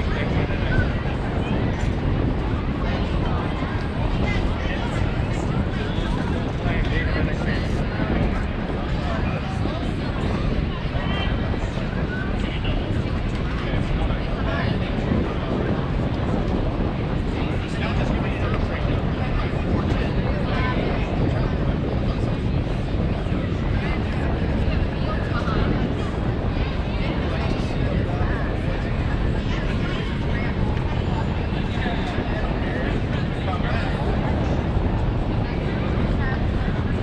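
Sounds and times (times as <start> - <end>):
distant voices: 0.0 - 37.0
steady low rumble: 0.0 - 37.0.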